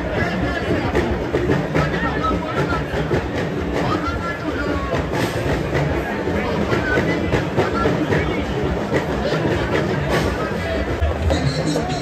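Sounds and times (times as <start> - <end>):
crowd voices and bustle: 0.0 - 12.0.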